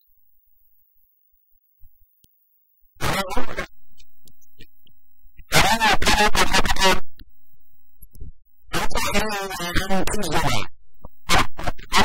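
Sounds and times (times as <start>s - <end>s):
person talking: 8.7s - 10.7s.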